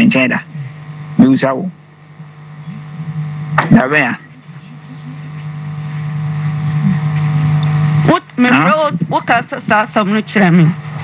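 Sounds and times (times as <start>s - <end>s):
droning hum with overtones: 0.0s - 11.0s
woman speaking: 2.7s - 3.6s, 4.2s - 7.2s.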